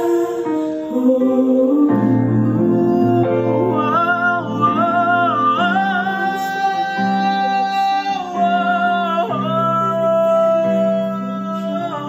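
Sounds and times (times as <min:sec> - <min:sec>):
instrumental accompaniment: 0:00.0 - 0:12.0
man singing long notes: 0:00.0 - 0:12.0.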